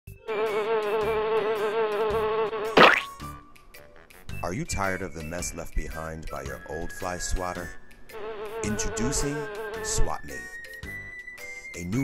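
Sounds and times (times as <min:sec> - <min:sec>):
housefly buzzing: 0:00.2 - 0:03.4, 0:08.1 - 0:10.0
fly swatter splat: 0:02.7 - 0:03.2.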